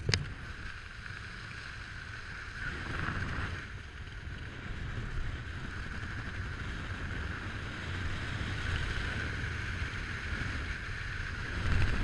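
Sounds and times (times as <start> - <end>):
wind rushing over microphone: 2.5 - 12.0.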